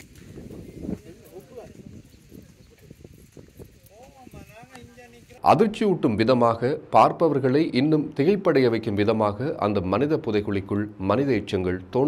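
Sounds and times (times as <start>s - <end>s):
faint people talking: 0.6s - 5.4s.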